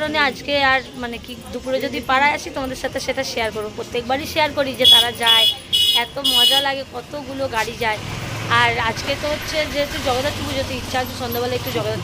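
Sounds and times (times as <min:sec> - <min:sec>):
woman talking: 0:00.0 - 0:12.0
vehicle engine hum: 0:02.6 - 0:12.0.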